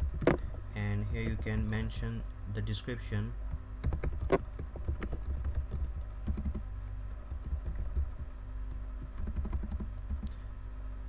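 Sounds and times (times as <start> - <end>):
steady low hum: 0.0 - 11.0
typing on computer keyboard: 1.0 - 2.0, 3.8 - 6.6, 7.3 - 8.4, 9.0 - 10.4.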